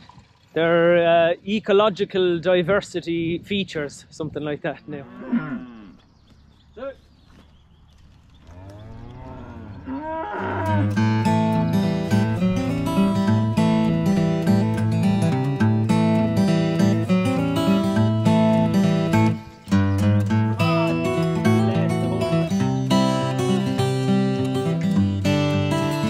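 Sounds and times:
cattle mooing: 4.9 - 6.0, 8.5 - 11.4
strummed acoustic guitar music: 10.6 - 26.0.

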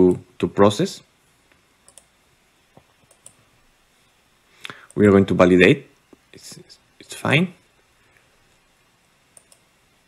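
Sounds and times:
computer mouse clicks: 1.8 - 2.1, 2.8 - 3.4, 9.3 - 9.7.

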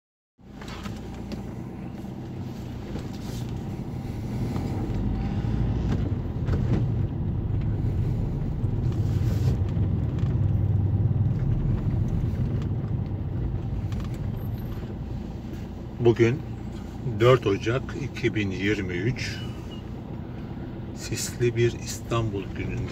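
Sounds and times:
car engine and tyres rumbling: 0.4 - 22.9.

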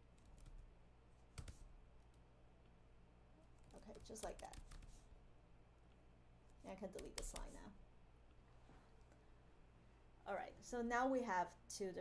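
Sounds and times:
faint low hum: 0.0 - 12.0
keyboard keystrokes: 3.6 - 4.9, 7.0 - 7.6.

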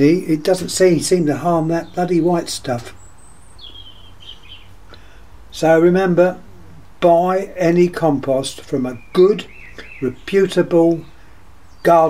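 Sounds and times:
small bird chirping: 1.5 - 5.1, 9.0 - 12.0.

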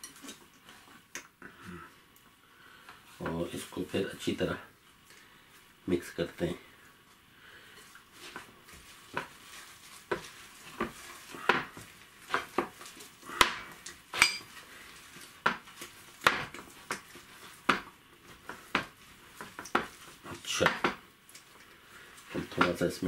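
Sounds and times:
hand mixing thick batter: 7.6 - 23.0.

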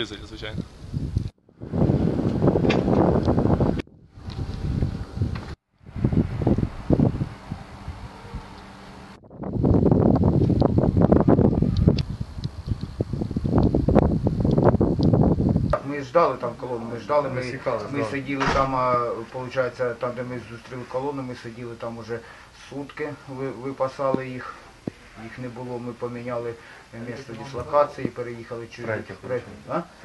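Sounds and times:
wind buffeting microphone: 0.0 - 15.8.

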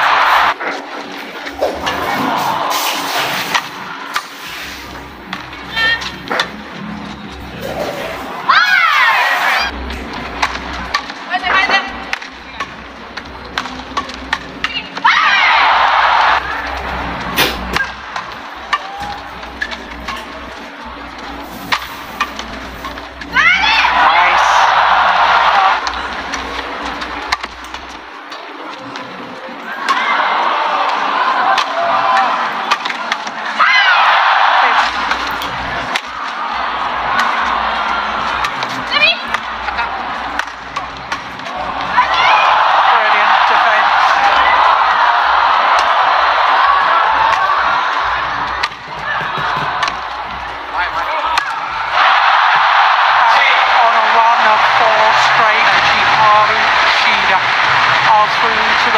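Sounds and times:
crowd noise: 0.0 - 58.9
crowd shouting and cheering: 0.0 - 58.9
racket hitting shuttlecock: 31.5 - 33.4.

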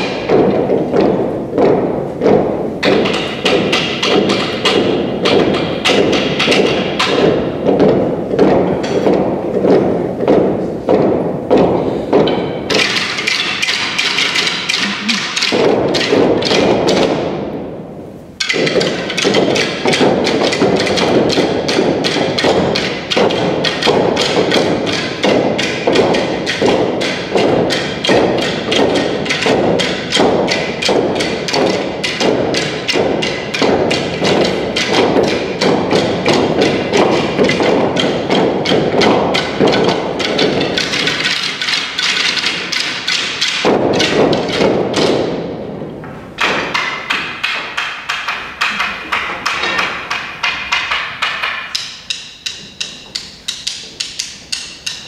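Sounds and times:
deep thuds: 0.0 - 12.9
wooden sticks striking: 0.0 - 55.0.

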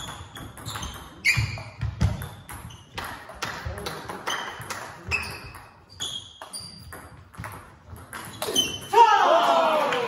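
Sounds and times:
player shouting: 8.9 - 10.0.

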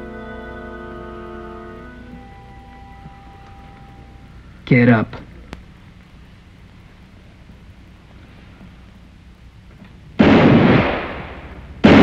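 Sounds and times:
film soundtrack hum and hiss: 0.0 - 12.0.

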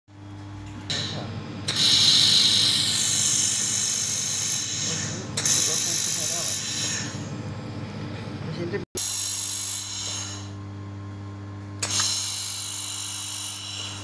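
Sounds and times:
low machine hum: 0.1 - 14.0
laser welder gas hiss: 1.7 - 7.2, 9.0 - 10.6, 11.8 - 14.0.

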